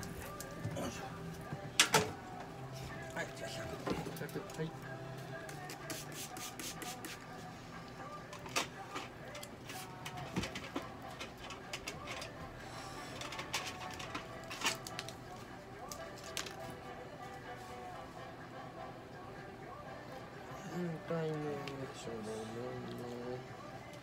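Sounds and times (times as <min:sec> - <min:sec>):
soft background music: 0:00.0 - 0:24.0
spray bottle spritzes: 0:05.7 - 0:07.2.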